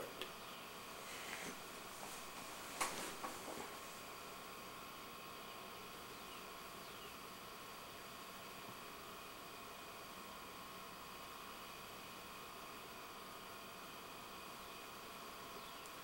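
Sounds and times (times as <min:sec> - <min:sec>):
faint high-pitched whine: 0:00.0 - 0:16.0
steady low hiss: 0:00.0 - 0:16.0.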